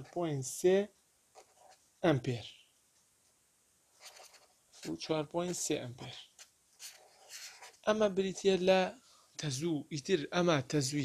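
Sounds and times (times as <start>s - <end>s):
person speaking: 0.0s - 0.9s, 2.0s - 2.7s, 4.0s - 11.0s
pen scratching on paper: 1.4s - 1.8s, 4.0s - 7.9s.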